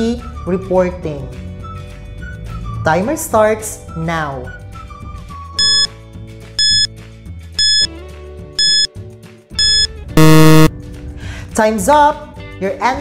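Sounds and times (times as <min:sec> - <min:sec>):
light background music: 0:00.0 - 0:08.9, 0:10.6 - 0:13.0
low buzzer: 0:05.6 - 0:05.9, 0:06.6 - 0:06.9, 0:07.6 - 0:07.9, 0:08.6 - 0:08.9, 0:09.6 - 0:10.7
short high beeps: 0:05.6 - 0:05.9, 0:06.6 - 0:06.9, 0:07.6 - 0:07.9, 0:08.6 - 0:08.9, 0:09.6 - 0:10.7.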